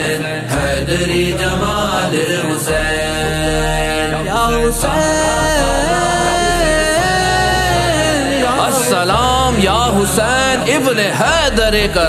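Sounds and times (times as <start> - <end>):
male voices chanting: 0.0 - 12.0.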